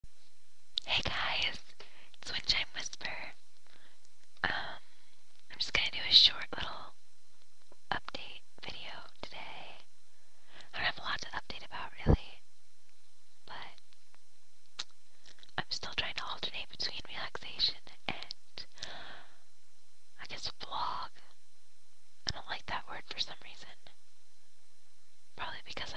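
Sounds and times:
person whispering: 0.8 - 3.4, 4.4 - 4.8, 5.5 - 6.9, 7.9 - 9.8, 10.7 - 12.4, 13.5 - 13.8, 15.6 - 18.8, 20.2 - 21.2, 22.3 - 23.9, 25.4 - 25.9.

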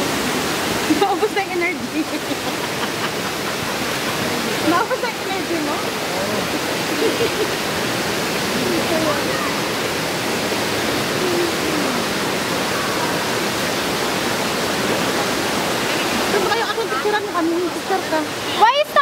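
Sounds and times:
rushing water: 0.0 - 19.0.

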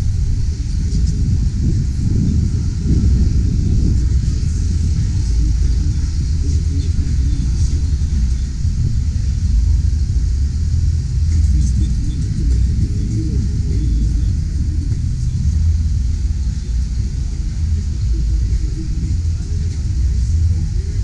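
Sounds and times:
faint crowd voices: 0.0 - 21.0
wind buffeting microphone: 0.0 - 21.0.

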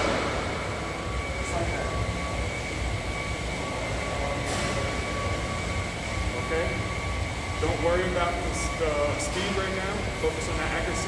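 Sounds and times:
low gym rumble: 0.0 - 11.0.

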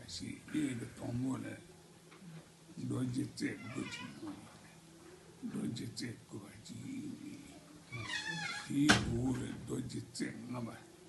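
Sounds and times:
low speech: 5.4 - 10.9.

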